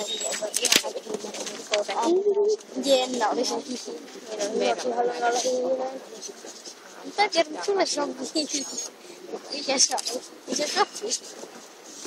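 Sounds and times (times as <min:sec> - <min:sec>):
people talking: 0:00.0 - 0:11.5.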